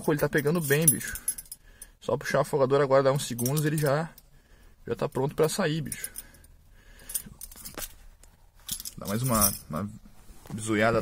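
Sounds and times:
car keys clinking: 0.0 - 1.6, 3.2 - 4.3, 8.6 - 9.9.

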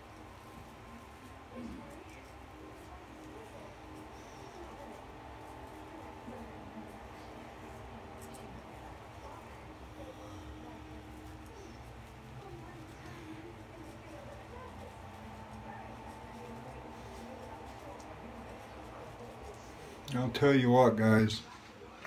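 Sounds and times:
razor scraping stubble: 0.0 - 20.4
faint distant voices: 0.0 - 22.0
low steady hum: 0.0 - 22.0.

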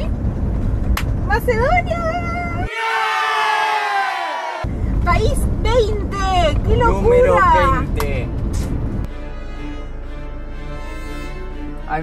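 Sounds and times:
vehicle road rumble: 0.0 - 2.7, 4.6 - 9.2
group of voices cheering: 2.7 - 4.7.

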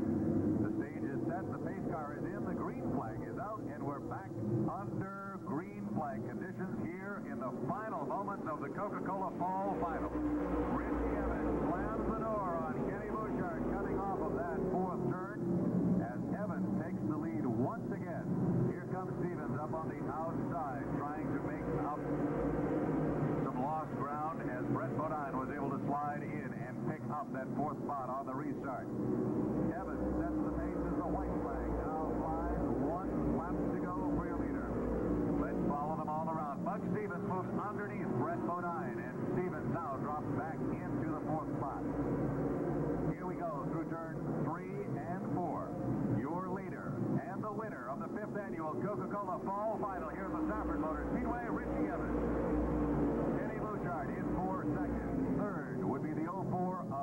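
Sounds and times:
race car engines at full throttle: 0.0 - 57.0.

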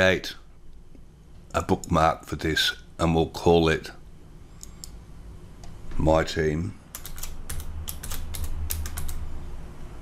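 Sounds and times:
keyboard typing: 6.9 - 9.2.

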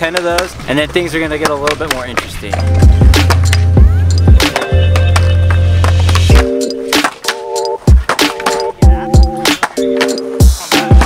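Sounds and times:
skateboard wheels rolling: 0.0 - 11.0
music with heavy bass: 2.5 - 11.0
skateboard knocking on ledge: 4.3 - 10.2.

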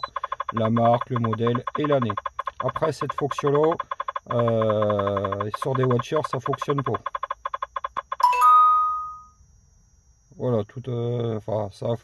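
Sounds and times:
tablet scan tick: 0.0 - 8.2
bright two-note chime: 8.2 - 9.4.

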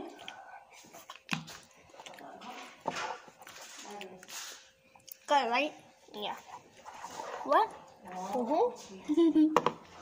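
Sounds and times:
noodle slurping: 6.4 - 8.4.

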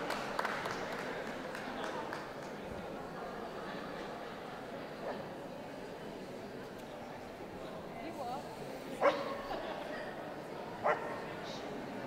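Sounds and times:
background chatter: 0.0 - 12.0
dog barking: 9.0 - 9.4, 10.8 - 11.2.

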